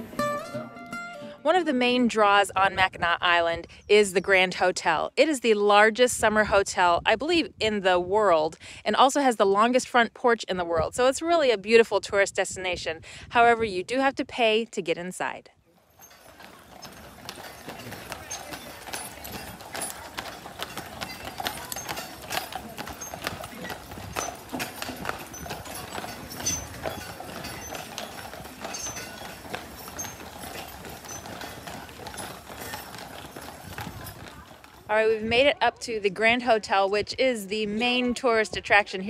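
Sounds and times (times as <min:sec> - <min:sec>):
people talking: 0:01.4 - 0:15.5, 0:33.7 - 0:39.0
hooves clip-clopping on pavement: 0:15.2 - 0:39.0.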